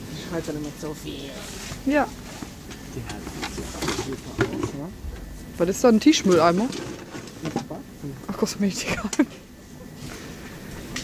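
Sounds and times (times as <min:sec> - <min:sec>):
indistinct voices talking: 0:00.0 - 0:10.8.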